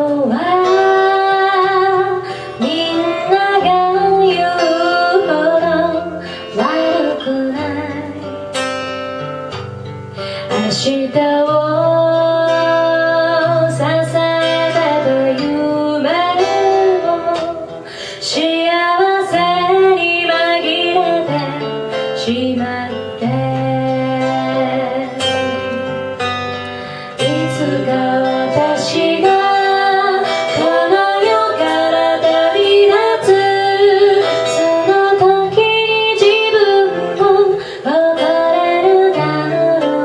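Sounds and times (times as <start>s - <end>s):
woman singing into microphone: 0.0s - 9.6s, 10.2s - 40.0s
small band with guitar: 0.0s - 40.0s.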